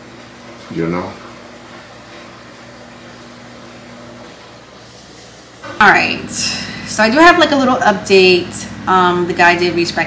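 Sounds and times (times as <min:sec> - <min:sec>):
low hum with steady tones: 0:00.0 - 0:10.0.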